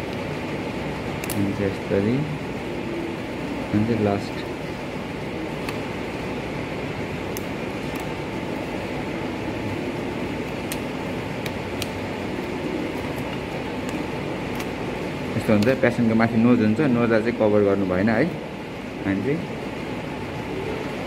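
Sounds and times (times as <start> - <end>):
background hum and hiss: 0.0 - 21.0.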